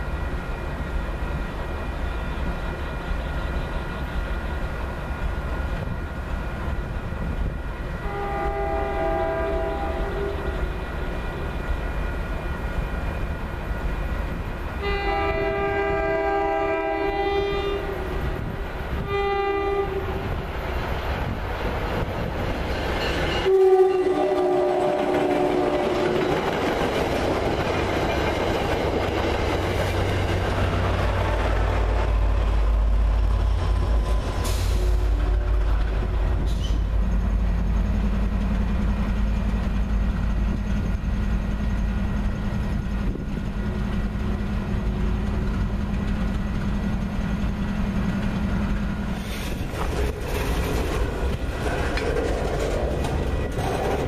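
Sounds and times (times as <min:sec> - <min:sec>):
diesel locomotive idling: 0:00.0 - 0:54.0
train air horn blasts: 0:08.0 - 0:10.8, 0:14.8 - 0:20.4, 0:23.4 - 0:26.2, 0:34.4 - 0:36.9
train wheels clickety-clack: 0:19.9 - 0:54.0.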